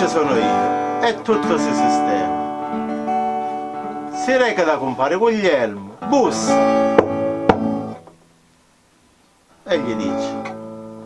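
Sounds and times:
acoustic guitar chord strummed: 0:00.0 - 0:08.4, 0:09.5 - 0:11.0.

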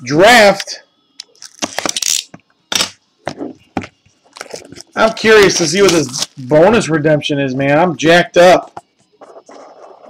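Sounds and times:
plastic wrapping tearing and crinkling: 0:01.2 - 0:03.0, 0:04.3 - 0:06.6.

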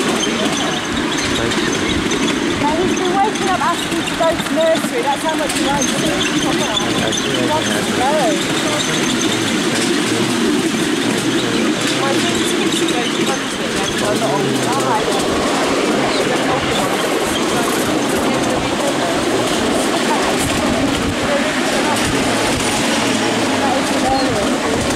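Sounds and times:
faint voices: 0:00.0 - 0:24.9
miniature train running: 0:00.0 - 0:24.9.

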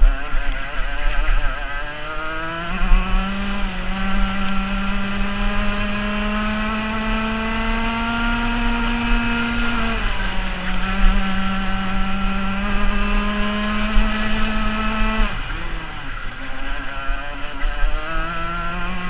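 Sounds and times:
kart engine at high revs: 0:00.0 - 0:19.0.

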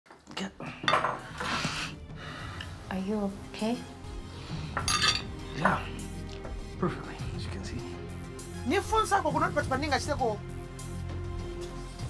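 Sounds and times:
cutlery clinking on crockery: 0:00.8 - 0:01.4, 0:04.8 - 0:05.7.

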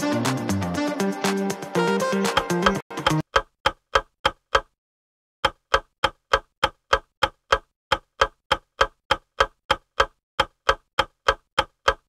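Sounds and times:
clock ticking: 0:01.9 - 0:04.8, 0:05.4 - 0:12.0.

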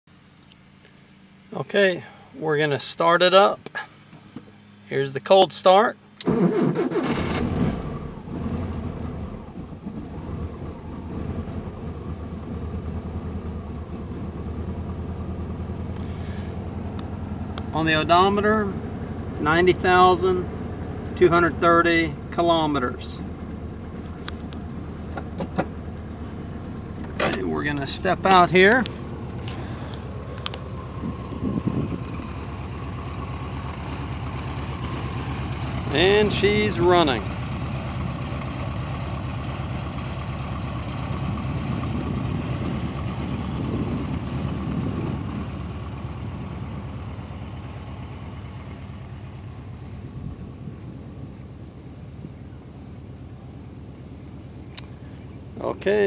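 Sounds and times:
car engine idling: 0:06.1 - 0:56.0.

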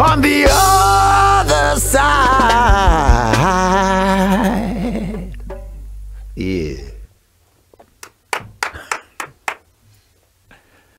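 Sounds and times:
hand claps: 0:08.0 - 0:09.7.

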